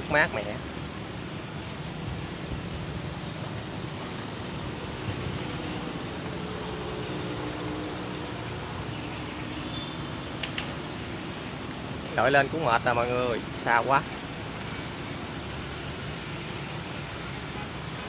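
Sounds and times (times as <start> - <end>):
high insect buzz: 4.0 - 17.4.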